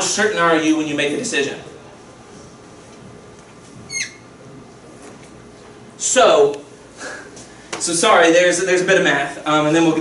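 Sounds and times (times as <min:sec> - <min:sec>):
faint room hum: 0:00.0 - 0:10.0
brief high squeak: 0:03.9 - 0:04.3.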